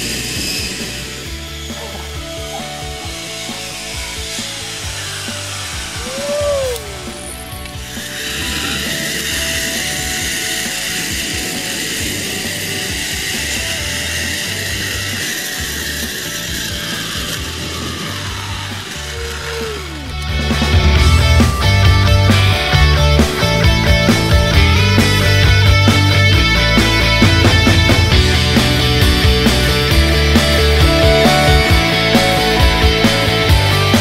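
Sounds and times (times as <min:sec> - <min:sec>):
background music: 0:00.0 - 0:34.0
zipline pulleys whirring on cable: 0:00.0 - 0:34.0.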